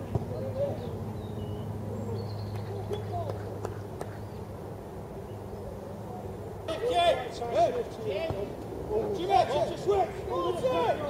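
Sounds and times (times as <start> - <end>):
distant players calling: 0.0 - 4.6, 6.5 - 11.0.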